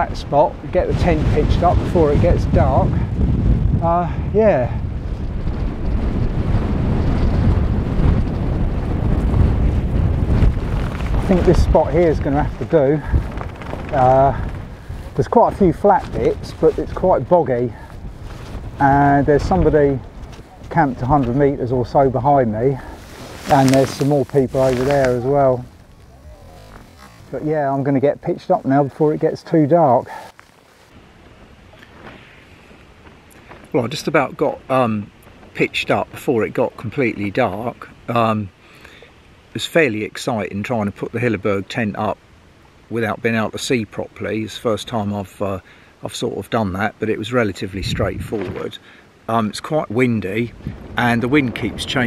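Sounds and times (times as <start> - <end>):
wind buffeting microphone: 0.0 - 35.8, 47.6 - 48.7, 49.9 - 52.0.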